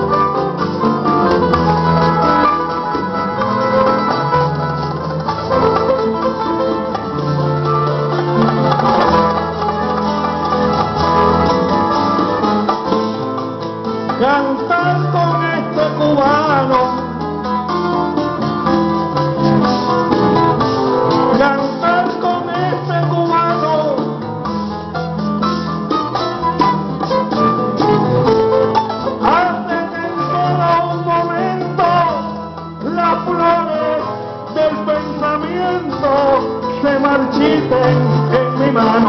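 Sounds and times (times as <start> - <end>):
acoustic folk band playing: 0.0 - 39.0.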